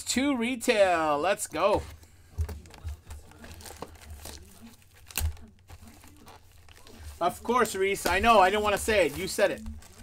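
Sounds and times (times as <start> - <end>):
plastic wrapping crinkling and tearing: 2.4 - 10.0.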